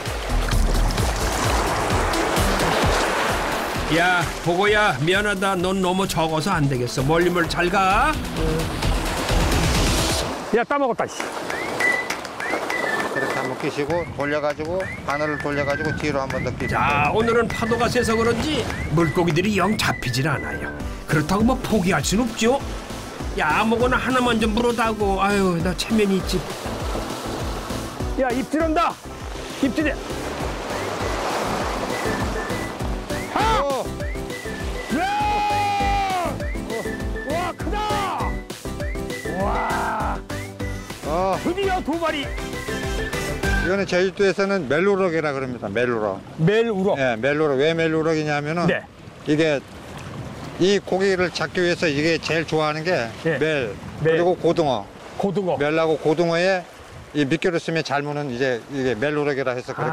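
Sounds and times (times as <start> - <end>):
sea waves splashing over rocks: 0.0 - 5.6, 6.4 - 15.1, 21.2 - 36.5, 43.7 - 59.6
background music: 0.0 - 10.7, 14.8 - 45.2.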